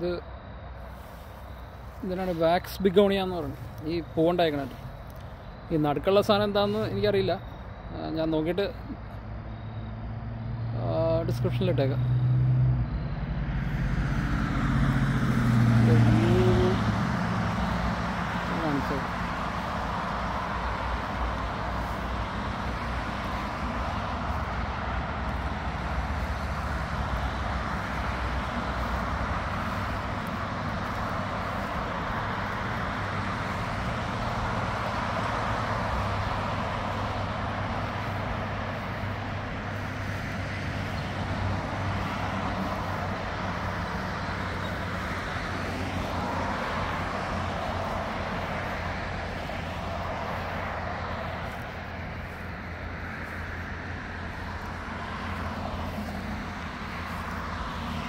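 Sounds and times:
road traffic noise: 0.0 - 58.0.

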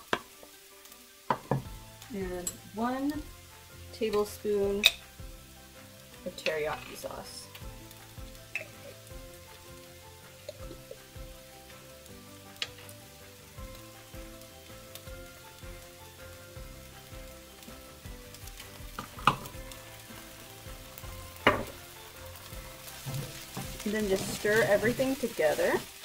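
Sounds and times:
food sizzling in a skillet: 0.0 - 26.0.

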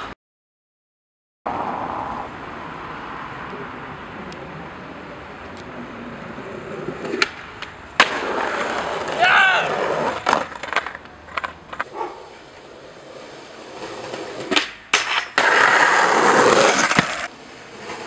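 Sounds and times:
skateboard wheels rolling on pavement: 1.5 - 18.0
skateboard clack: 6.4 - 18.0
skateboard impact: 6.4 - 18.0
person crying out: 9.2 - 9.8.

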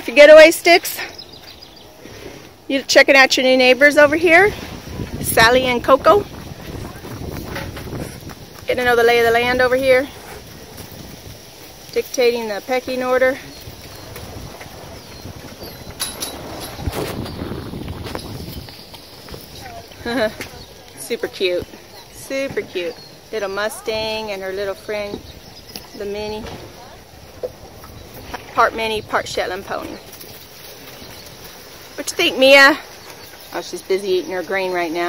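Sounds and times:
outdoor background noise: 0.0 - 35.0
soft hoof steps: 0.0 - 35.0.

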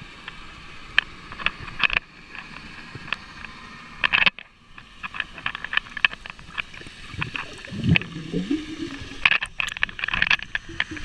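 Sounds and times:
muffled underwater hiss: 0.0 - 11.0.

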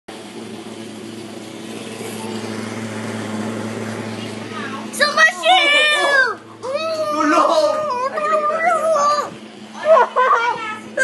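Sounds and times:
fogging machine engine drone: 0.1 - 11.0.

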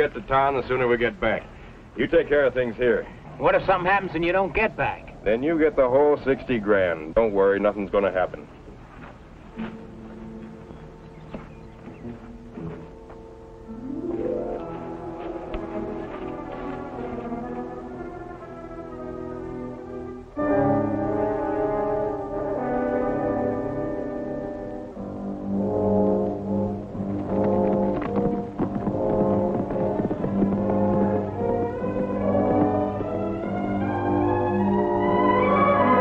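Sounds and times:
dramatic orchestral music: 12.0 - 36.0
brass sustained chords: 12.3 - 36.0.

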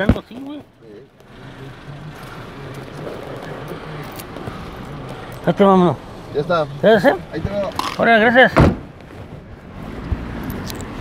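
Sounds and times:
road noise hiss: 0.3 - 11.0.

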